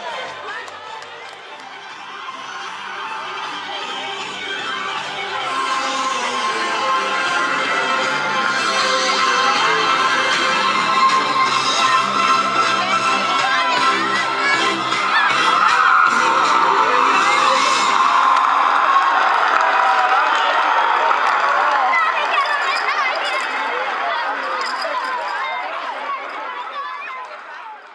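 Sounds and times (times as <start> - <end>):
background music: 0.0 - 19.2
children shouting and cheering: 0.0 - 27.9.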